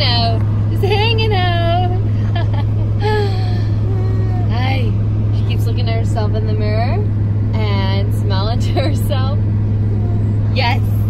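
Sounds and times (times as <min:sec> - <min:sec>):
vehicle drone inside cabin: 0:00.0 - 0:11.0.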